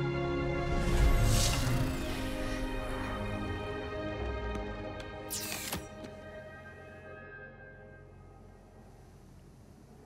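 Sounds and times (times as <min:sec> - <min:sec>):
film score music: 0:00.0 - 0:10.0.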